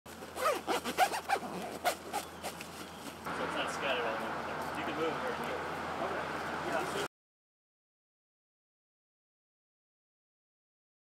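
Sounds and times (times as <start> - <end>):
bag zipper being pulled: 0.1 - 3.0.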